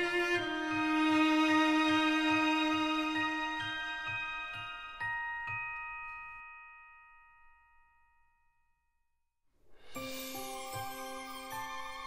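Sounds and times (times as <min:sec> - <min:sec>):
ringing bell-like tones: 0:00.0 - 0:08.9.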